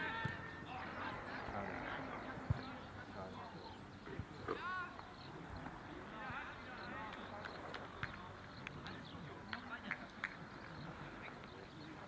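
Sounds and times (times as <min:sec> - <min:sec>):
distant players shouting: 0:00.0 - 0:02.5.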